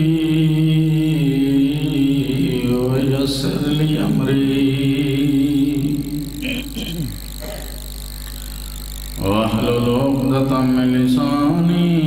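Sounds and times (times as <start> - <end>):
man chanting over loudspeakers: 0.0 - 6.4, 9.2 - 12.0
low electrical hum: 0.0 - 12.0.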